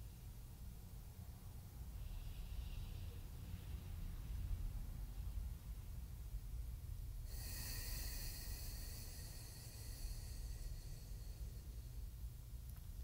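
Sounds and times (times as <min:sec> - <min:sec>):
slow breath through nostril: 0:07.3 - 0:12.1.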